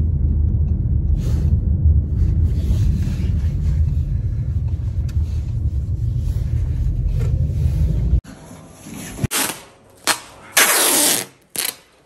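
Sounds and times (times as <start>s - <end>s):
car road rumble: 0.0s - 8.2s.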